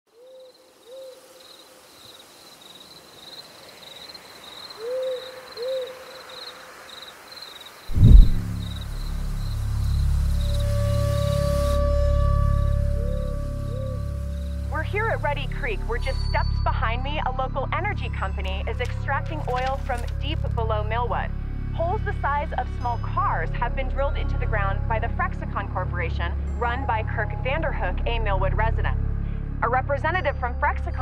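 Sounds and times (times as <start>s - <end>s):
owl hooting: 0.2s - 1.4s, 4.7s - 6.6s, 10.3s - 14.7s
insects chirping: 0.2s - 14.7s
deep boom: 7.9s - 8.8s
low sustained musical drone: 8.0s - 17.4s.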